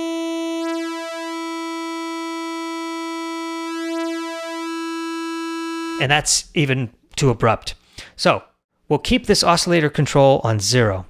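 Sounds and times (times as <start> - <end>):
detuned synthesizer sawtooth note: 0.0 - 6.0.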